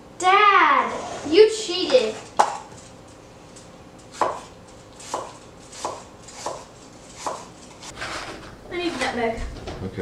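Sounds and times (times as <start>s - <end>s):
knife chopping on cutting board: 4.1s - 7.5s.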